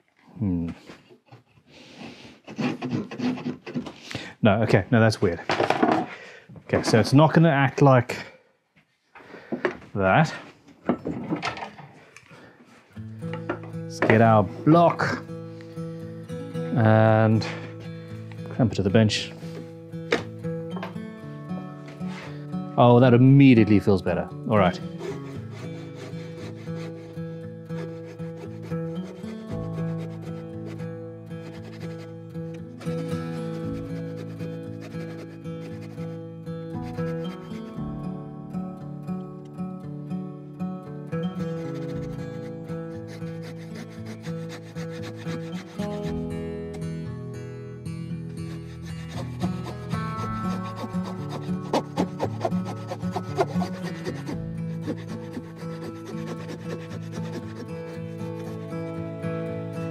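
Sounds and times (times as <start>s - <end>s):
bow saw cutting wood: 2.4s - 3.8s, 24.7s - 36.2s, 36.8s - 37.9s, 41.2s - 46.4s, 48.2s - 58.7s
background music: 12.9s - 59.9s.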